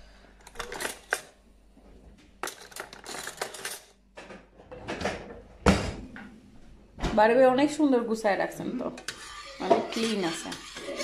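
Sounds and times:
metal cutlery clinking: 2.4s - 4.0s.

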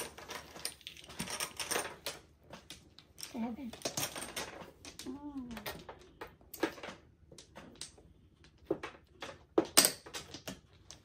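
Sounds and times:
mahjong tiles clacking: 0.0s - 11.0s.

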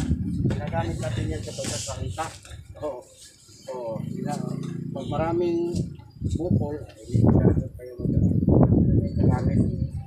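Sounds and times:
people talking indistinctly: 0.0s - 10.0s.

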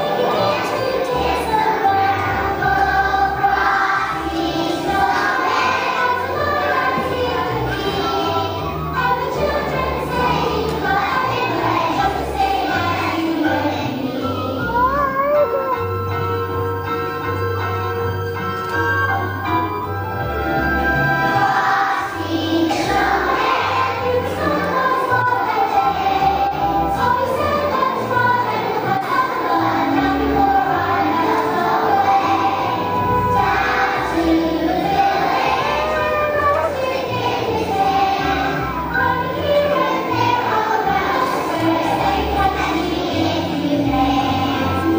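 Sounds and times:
children's choir singing: 0.0s - 44.9s
instrumental accompaniment with bass: 0.0s - 44.9s.

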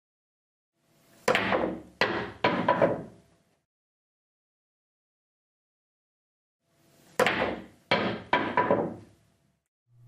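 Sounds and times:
pool cue striking ball: 1.3s - 3.1s, 7.2s - 9.1s
billiard balls clacking: 7.2s - 9.2s.

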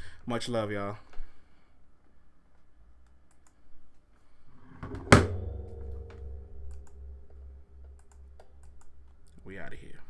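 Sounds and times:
ringing thump: 4.7s - 9.1s.

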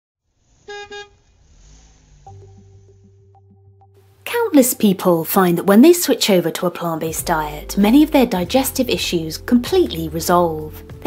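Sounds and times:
low rumble: 0.3s - 4.3s
vehicle horn honks: 0.7s - 1.2s.

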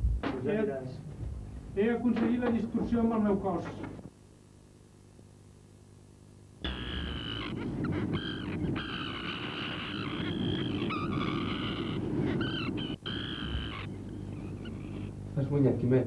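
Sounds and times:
warbling high electronic tones: 6.6s - 15.1s.

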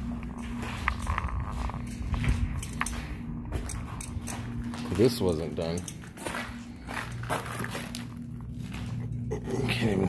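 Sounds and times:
footsteps on concrete: 0.0s - 9.2s
low rumble: 0.0s - 10.0s
steady low hum: 0.0s - 10.0s.

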